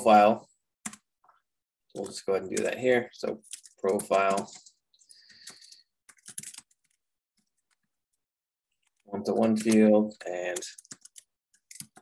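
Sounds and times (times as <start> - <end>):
typing on computer keyboard: 3.4 - 4.7, 5.3 - 7.8, 8.8 - 12.0.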